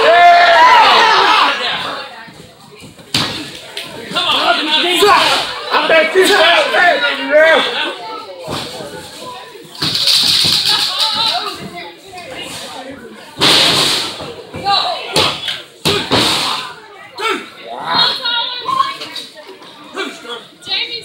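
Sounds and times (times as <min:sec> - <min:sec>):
spectators shouting and cheering: 0:00.0 - 0:02.1, 0:04.1 - 0:08.3.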